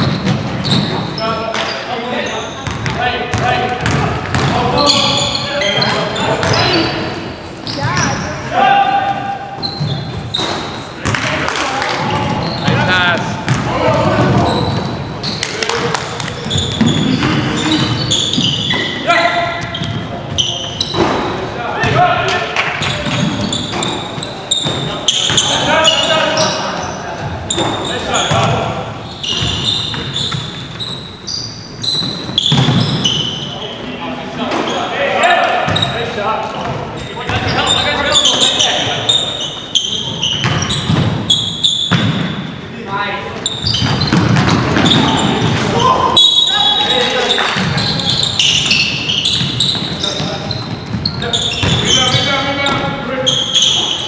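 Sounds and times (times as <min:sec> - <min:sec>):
basketball bouncing on hardwood floor: 0:02.6 - 0:04.6, 0:13.5 - 0:14.5, 0:43.7 - 0:45.6.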